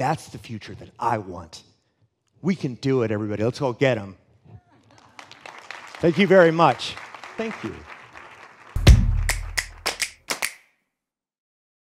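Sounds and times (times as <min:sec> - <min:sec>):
faint audience applause: 0:04.8 - 0:10.6
sharp claps: 0:05.2 - 0:10.6
deep boom: 0:08.8 - 0:09.6.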